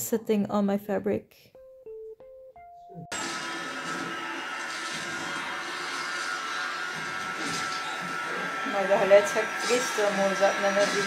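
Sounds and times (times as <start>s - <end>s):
thin high whine: 3.1s - 11.0s.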